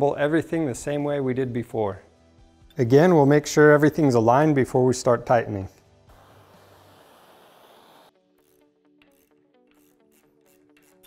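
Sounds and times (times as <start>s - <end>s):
quiet plucked background music: 0.0s - 7.2s, 8.2s - 11.0s
gas torch flame hissing: 6.1s - 8.1s.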